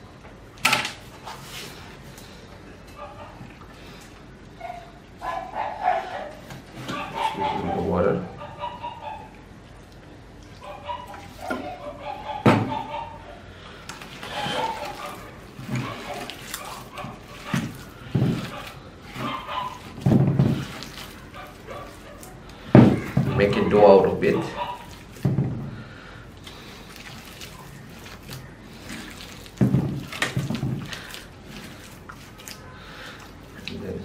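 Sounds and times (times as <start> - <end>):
hands kneading wet clay: 1.0 - 34.0.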